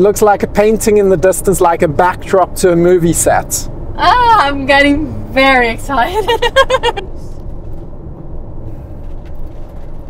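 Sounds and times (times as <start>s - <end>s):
engine and tyre rumble: 0.0s - 10.0s.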